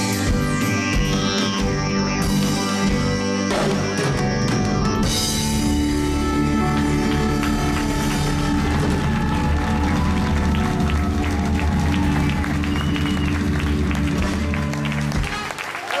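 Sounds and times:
drum and cymbal hits: 0:00.0 - 0:15.4
live rock band final chord: 0:00.0 - 0:15.7
audience applause: 0:05.6 - 0:16.0.

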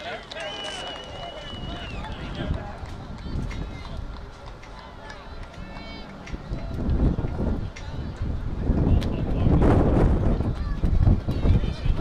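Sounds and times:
voices calling out: 0:00.0 - 0:09.5
referee's whistle: 0:00.4 - 0:02.2.

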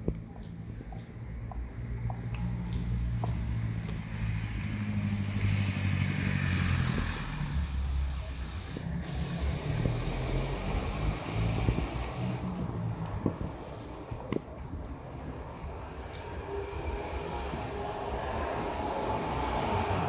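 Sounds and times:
low engine rumble: 0:00.0 - 0:20.0
vehicle passing: 0:01.5 - 0:20.0.

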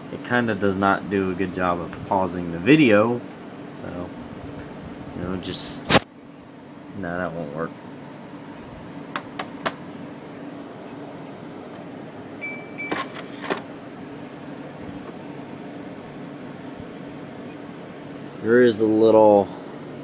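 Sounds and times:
laptop fan humming: 0:00.0 - 0:20.0
short high beep: 0:12.4 - 0:13.0.

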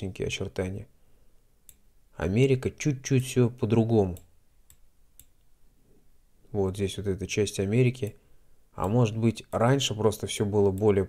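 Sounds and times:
faint computer mouse clicks: 0:04.1 - 0:05.5.

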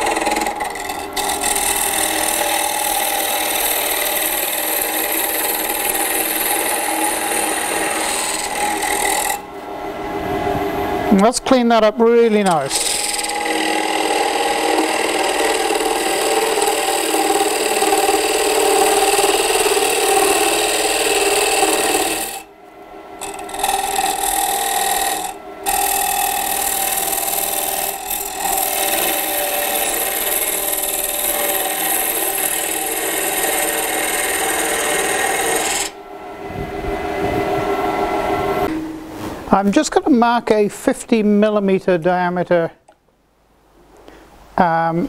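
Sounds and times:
lathe tool scraping wood: 0:00.0 - 0:39.4.

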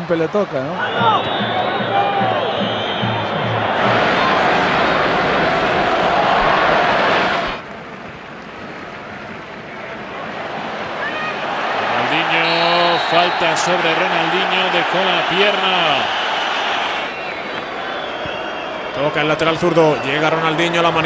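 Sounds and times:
crowd roar: 0:00.7 - 0:07.6, 0:10.1 - 0:21.0
commentator speaking: 0:12.0 - 0:16.1.

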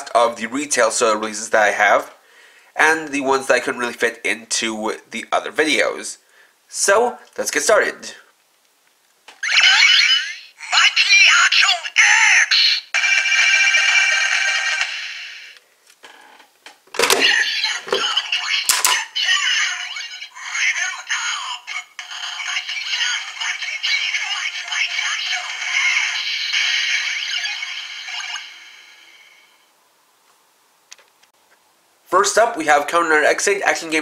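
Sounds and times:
recorded voice call and jingle: 0:02.8 - 0:08.2, 0:09.5 - 0:15.0, 0:17.0 - 0:29.1
sharp plastic clacks: 0:18.7 - 0:19.0.

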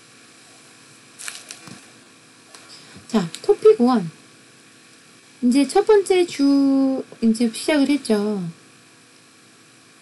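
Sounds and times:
speech: 0:03.0 - 0:04.2, 0:05.4 - 0:08.6.

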